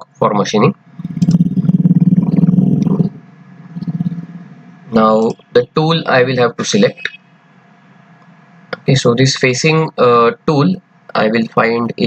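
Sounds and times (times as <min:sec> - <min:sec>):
low creaky vocal hum: 0:00.9 - 0:05.4.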